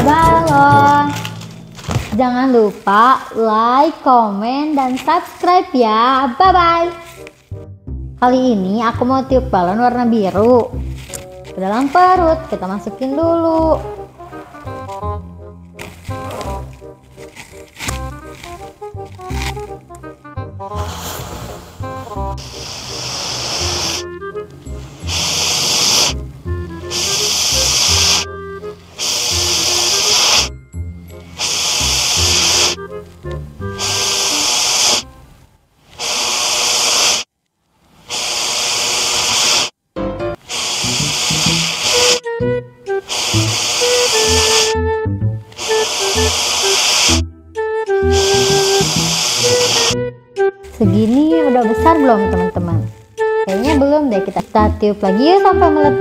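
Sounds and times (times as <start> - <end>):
background music: 0.0 - 35.5, 39.9 - 56.0
breath hissing through a hose: 15.8 - 19.8, 20.7 - 33.0, 33.6 - 35.1, 35.8 - 37.3, 38.0 - 39.8, 40.4 - 42.3, 42.9 - 44.9, 45.5 - 47.3, 47.9 - 50.0.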